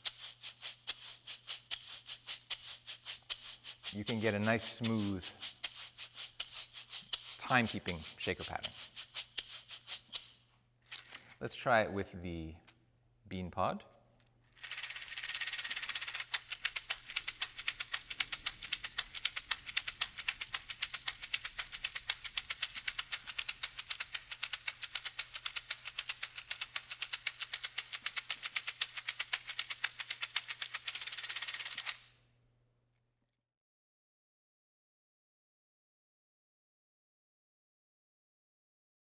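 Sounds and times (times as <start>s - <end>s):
seed pod shaker rattling: 0.0s - 11.4s, 14.6s - 32.0s.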